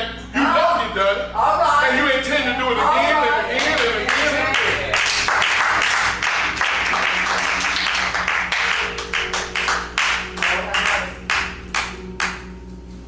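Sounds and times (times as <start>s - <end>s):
held musical chord: 0.3s - 13.0s
congregation clapping: 3.6s - 12.6s.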